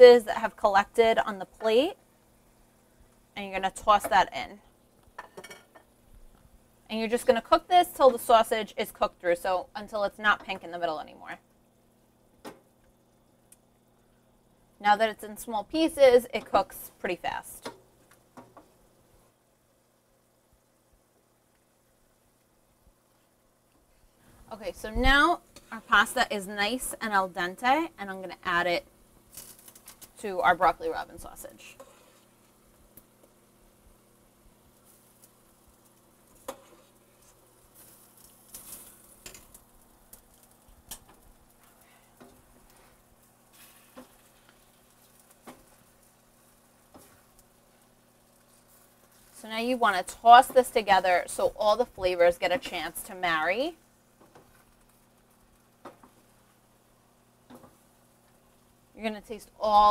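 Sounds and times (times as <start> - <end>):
food sizzling in a pan: 0.0 - 59.9.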